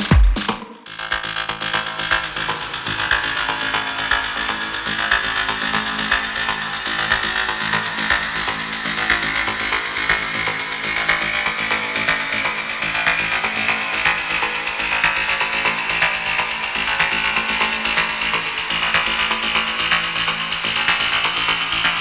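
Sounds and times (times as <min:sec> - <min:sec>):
harsh noise electronic music: 0:00.0 - 0:10.6.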